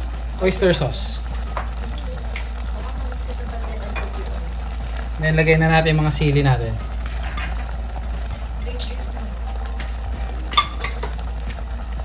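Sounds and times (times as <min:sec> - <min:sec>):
mussels boiling in a pot: 0:00.0 - 0:12.0.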